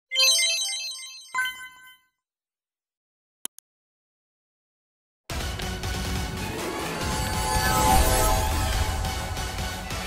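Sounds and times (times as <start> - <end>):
synthesized chime jingle: 0.1 - 2.1, 6.5 - 9.6.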